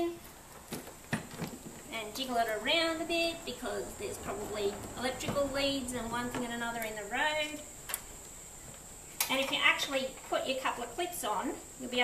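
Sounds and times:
woman speaking: 0.0s - 0.2s, 1.9s - 7.7s, 9.3s - 12.0s.

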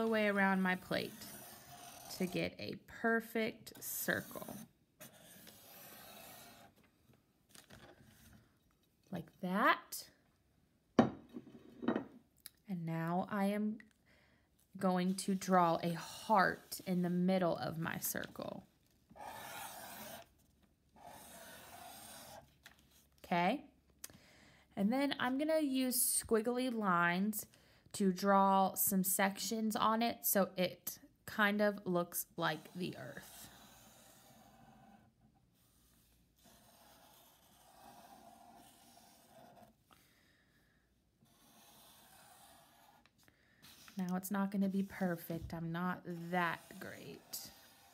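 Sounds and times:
marker rubbing on paper: 0.0s - 2.6s, 4.0s - 6.7s, 15.0s - 17.0s, 19.2s - 20.3s, 21.0s - 22.5s, 32.5s - 34.9s, 35.7s - 39.7s, 41.2s - 47.9s.

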